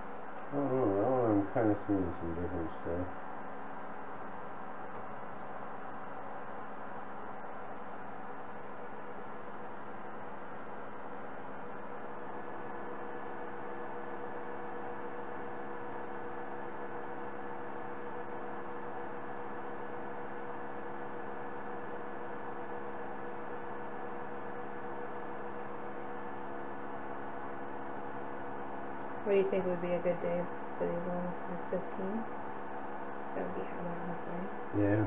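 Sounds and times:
electrical hum: 0:00.0 - 0:35.0.

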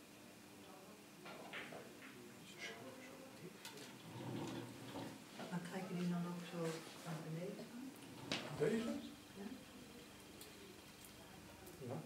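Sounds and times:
low murmur of voices: 0:00.0 - 0:12.0.

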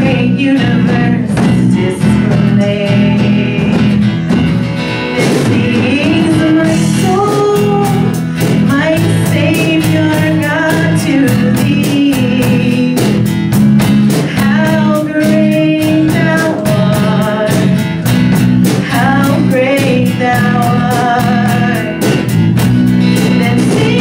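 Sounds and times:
acoustic guitars strummed: 0:00.0 - 0:24.0
people singing a melody: 0:05.0 - 0:13.2, 0:14.3 - 0:18.0, 0:18.8 - 0:22.3, 0:23.2 - 0:24.0.

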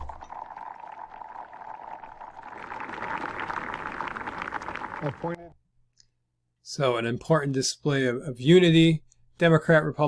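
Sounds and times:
crowd applauding: 0:02.6 - 0:05.4.

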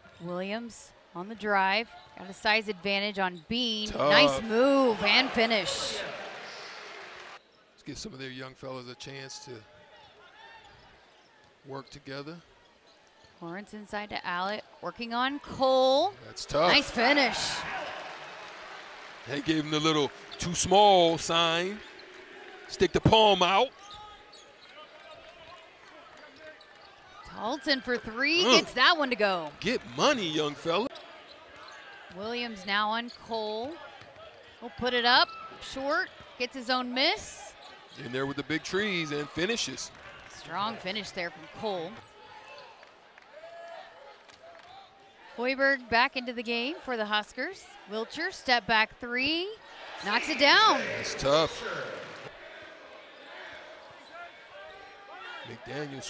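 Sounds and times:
arena crowd noise: 0:00.0 - 0:56.0
murmur of crowd: 0:49.6 - 0:56.0.

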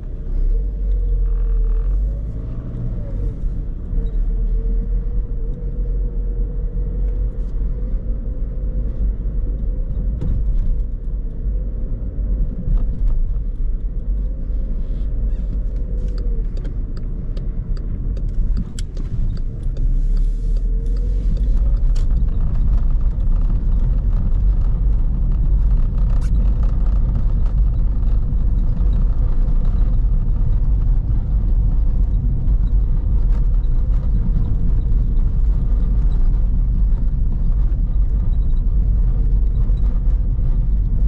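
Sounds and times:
faint diesel engine tone: 0:00.0 - 0:10.5, 0:13.8 - 0:41.0.

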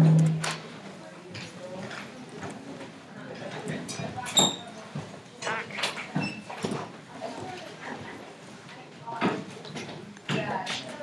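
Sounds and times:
classroom bustle: 0:00.0 - 0:11.0.

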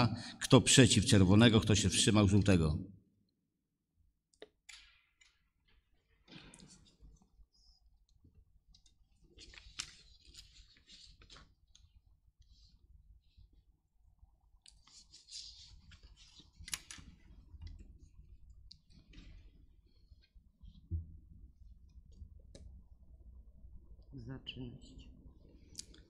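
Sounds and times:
faint clicks and rustles: 0:04.8 - 0:13.5.

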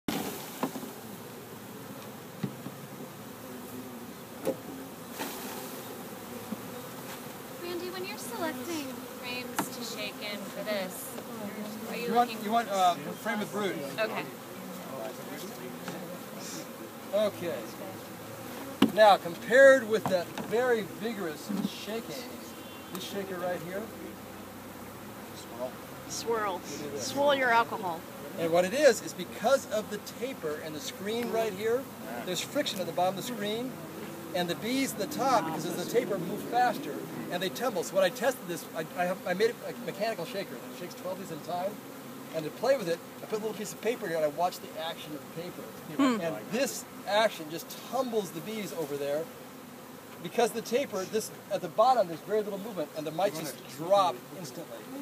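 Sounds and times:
honey bees buzzing: 0:00.1 - 0:55.0
faint voice: 0:45.9 - 0:46.4.

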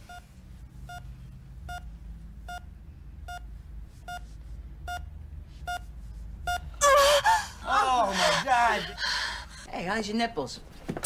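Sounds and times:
low room hum: 0:00.0 - 0:11.0
woman gasping: 0:06.8 - 0:09.7.

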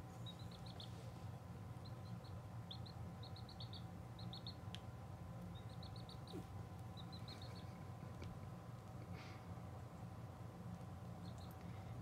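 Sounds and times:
baby chick peeping: 0:00.0 - 0:12.0.

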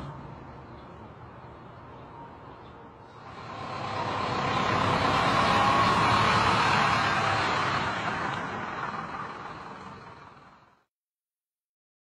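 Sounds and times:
car tyres and engine: 0:03.1 - 0:10.9
car rolling over manhole cover: 0:03.2 - 0:10.6.

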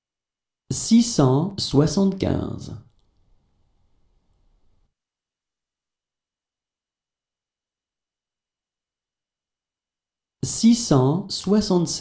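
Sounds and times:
person speaking: 0:00.7 - 0:03.0, 0:10.4 - 0:12.0.

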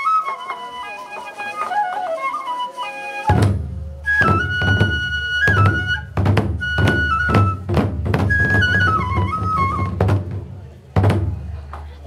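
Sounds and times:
transverse flute melody: 0:00.0 - 0:10.2
barrel drums booming: 0:03.3 - 0:11.7.

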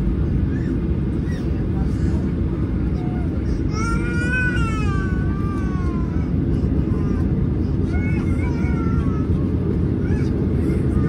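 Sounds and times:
aircraft cabin engine rumble: 0:00.0 - 0:11.0.

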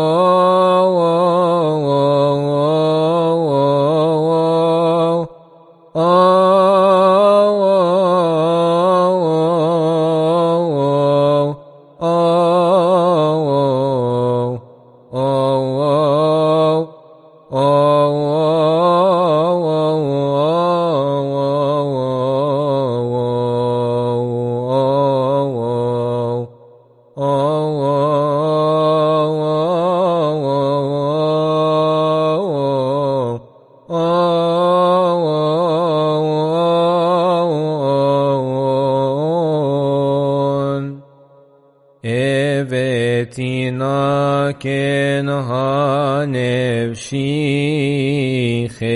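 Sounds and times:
man chanting: 0:00.0 - 0:48.9.

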